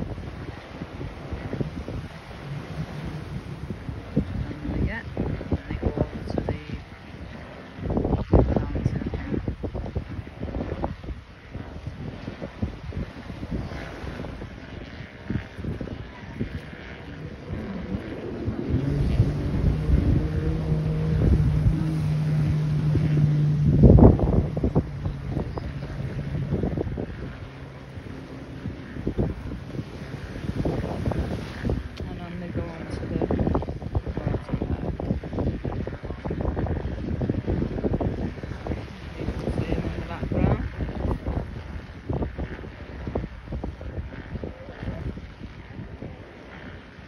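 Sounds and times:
jet ski engine running: 0.0s - 47.0s
wind buffeting microphone: 0.0s - 47.0s.

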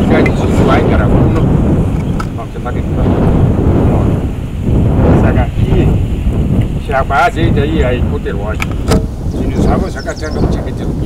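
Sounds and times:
man speaking: 0.0s - 1.4s, 2.3s - 3.2s, 5.1s - 6.0s, 6.7s - 8.6s, 9.3s - 11.0s
wind rumbling on microphone: 0.0s - 11.0s.

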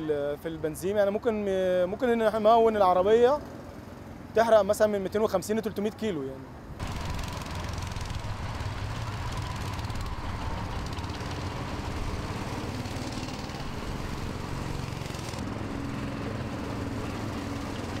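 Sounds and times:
go-kart engines running: 6.8s - 18.0s.

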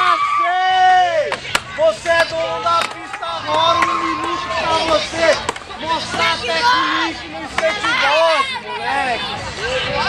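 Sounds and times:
loud voices calling out: 0.0s - 10.0s
skateboards clacking on concrete: 1.3s - 6.6s.

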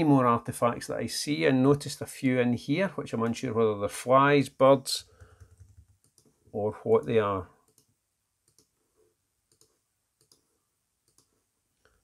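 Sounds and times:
computer mouse clicks: 5.1s - 6.4s, 7.6s - 8.8s, 9.5s - 11.4s.

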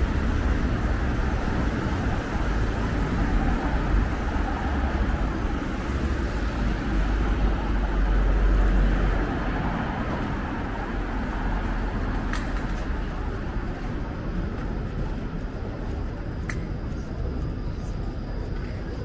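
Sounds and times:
cars driving past: 0.0s - 14.6s.

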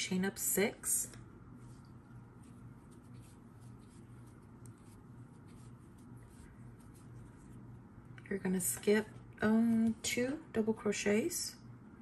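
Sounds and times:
steady low hum: 0.0s - 12.0s
crochet hook scratching yarn: 1.6s - 7.6s.

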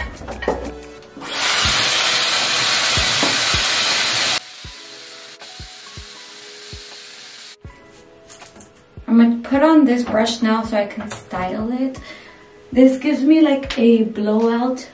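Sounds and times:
hair styler blowing air: 1.2s - 7.6s.

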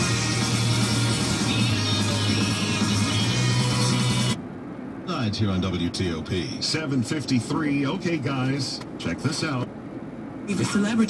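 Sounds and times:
music from car radio: 0.0s - 4.8s.

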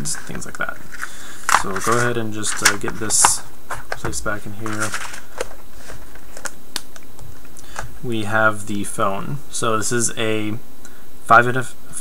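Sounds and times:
faint rustling: 0.0s - 6.6s.

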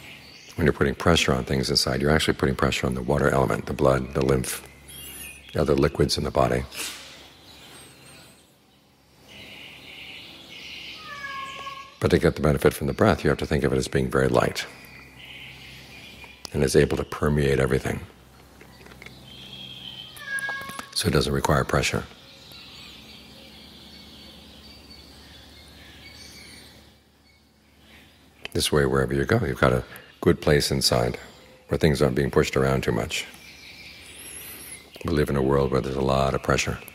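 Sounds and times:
birdsong chatter: 0.0s - 36.9s
faint high chirps: 2.6s - 13.4s, 14.0s - 36.9s.

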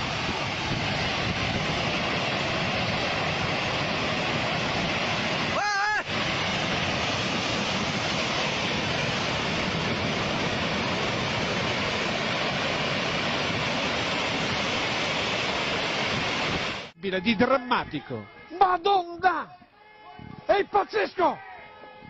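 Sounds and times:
landslide rushing: 0.0s - 17.0s.

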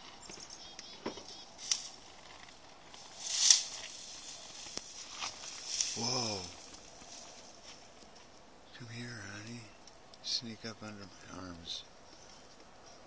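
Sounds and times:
footsteps crunching in snow: 1.6s - 8.3s.

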